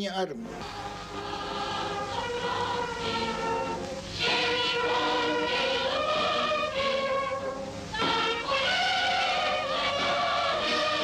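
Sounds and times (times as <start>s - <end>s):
choir singing held chords: 0.4s - 11.0s.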